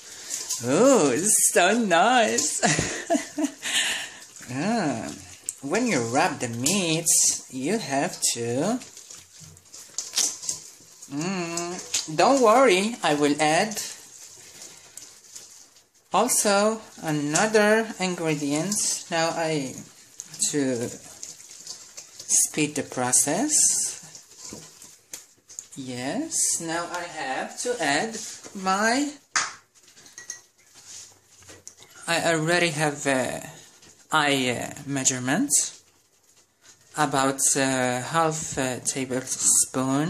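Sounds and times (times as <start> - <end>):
kitchenware clinking: 0.0 - 15.6, 29.4 - 30.7
utensils tapping metal bowl: 0.0 - 27.1, 29.4 - 30.6
hands squelching raw meat: 8.0 - 12.4, 16.5 - 22.3.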